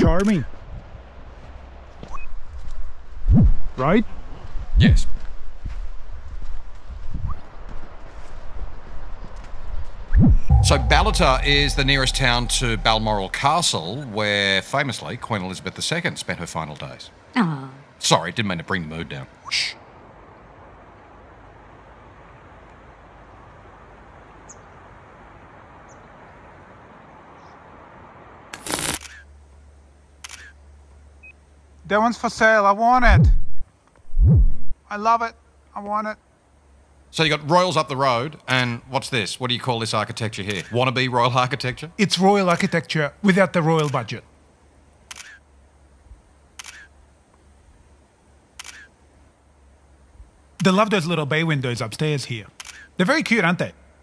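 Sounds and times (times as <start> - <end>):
faint low hum: 0.0 - 19.4
low steady hum: 10.2 - 18.0
sharp burst of noise: 10.3 - 14.5
single click: 28.6 - 29.2, 30.2 - 30.6, 40.5 - 40.7, 43.8 - 44.0, 45.1 - 45.4, 46.6 - 46.9, 48.6 - 48.9, 52.6 - 52.9.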